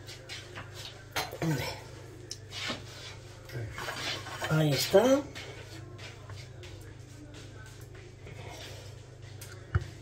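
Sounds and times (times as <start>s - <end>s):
steady low hum: 5.2s - 10.0s.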